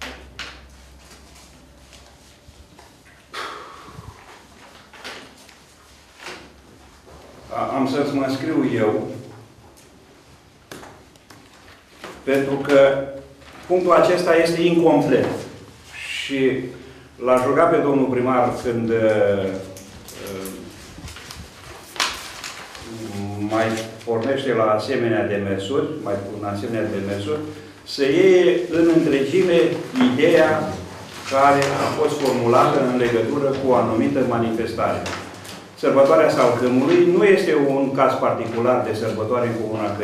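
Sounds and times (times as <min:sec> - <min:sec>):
paper sheets rustling: 0:00.0 - 0:03.3, 0:04.1 - 0:40.0.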